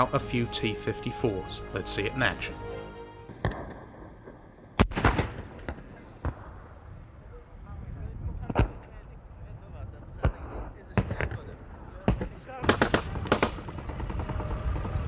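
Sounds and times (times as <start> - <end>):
explosions: 3.3 - 6.8
gunfire: 3.4 - 6.6, 10.2 - 14.5.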